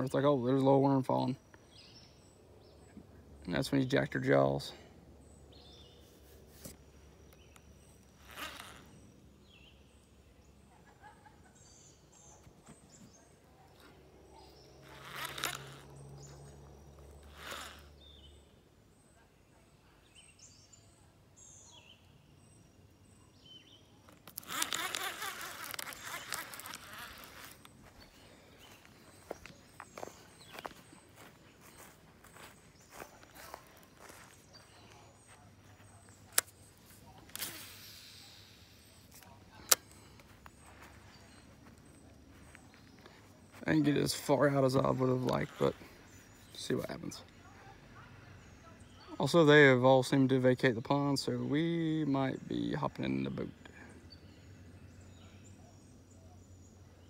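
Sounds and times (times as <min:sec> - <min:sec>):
fishing reel handling rustle: 0:06.3 - 0:09.1, 0:14.8 - 0:16.1, 0:17.0 - 0:18.0, 0:24.0 - 0:28.1, 0:36.2 - 0:43.2
sharp clicks: 0:24.0 - 0:27.8, 0:36.3 - 0:36.6, 0:39.1 - 0:40.3.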